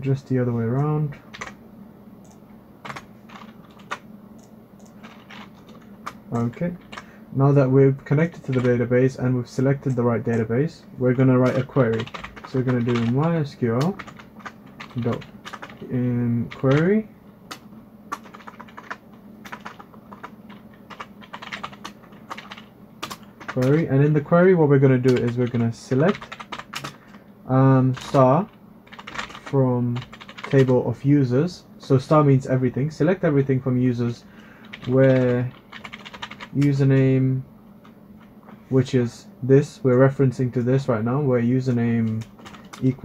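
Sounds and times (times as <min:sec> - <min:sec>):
computer keyboard typing: 0:00.7 - 0:01.6, 0:02.2 - 0:07.1, 0:08.3 - 0:08.9, 0:09.6 - 0:10.5, 0:11.1 - 0:23.9, 0:24.9 - 0:27.2, 0:27.9 - 0:30.8, 0:34.6 - 0:37.1, 0:42.0 - 0:43.0.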